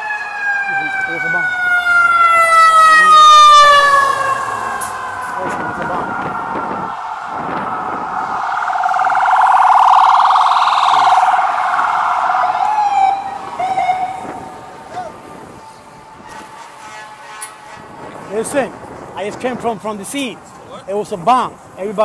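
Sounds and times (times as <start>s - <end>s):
siren warbling rapidly: 0.0s - 16.5s
siren sliding down in pitch: 0.0s - 16.6s.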